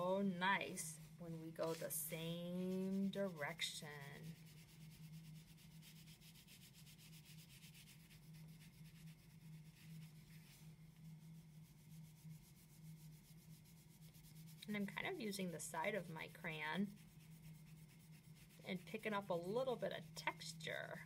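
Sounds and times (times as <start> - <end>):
wax crayon rubbing on paper: 1.3 - 21.0.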